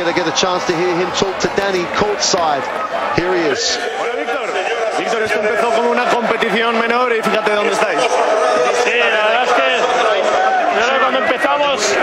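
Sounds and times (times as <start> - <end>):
arena crowd noise: 0.0 - 12.0
men talking: 0.0 - 12.0.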